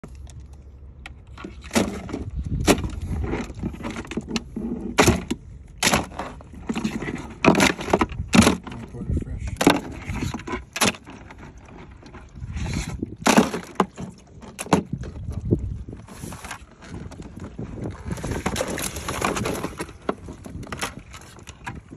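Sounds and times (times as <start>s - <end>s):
crabs clicking in plastic cooler: 1.4s - 8.9s, 9.6s - 15.6s, 16.2s - 21.9s.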